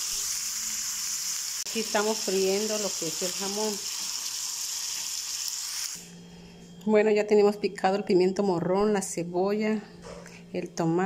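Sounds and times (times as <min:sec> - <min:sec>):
ham sizzling in hot oil: 0:00.0 - 0:06.0.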